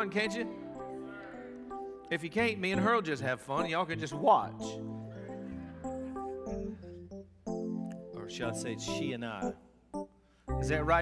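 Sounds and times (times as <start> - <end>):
keyboard playing sustained chords: 0.0 - 11.0.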